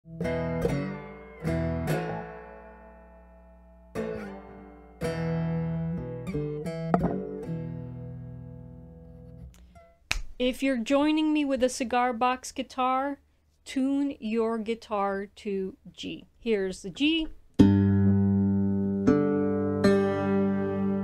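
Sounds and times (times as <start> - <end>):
cigar box guitar plucked notes: 0.1 - 10.0, 17.6 - 21.0.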